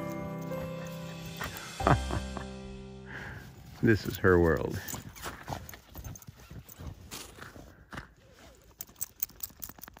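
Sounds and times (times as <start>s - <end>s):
footsteps crunching in snow: 3.1s - 8.9s.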